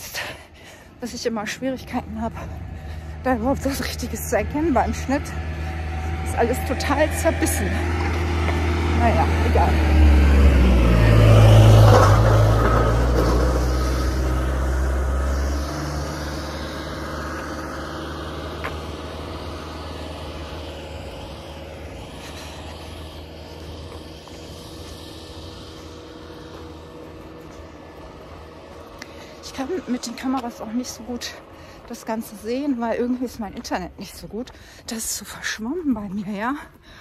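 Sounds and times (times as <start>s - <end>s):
vehicle engine passing by: 1.2s - 35.6s.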